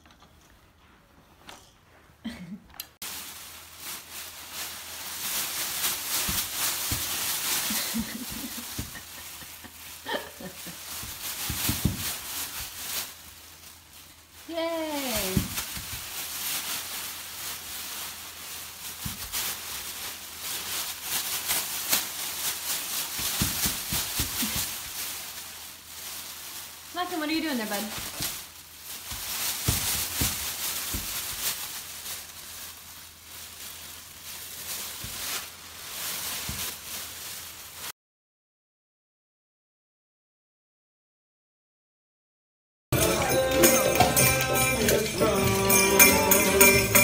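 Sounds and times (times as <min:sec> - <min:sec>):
plastic bags crinkling: 0:03.0 - 0:37.9, 0:43.0 - 0:47.0.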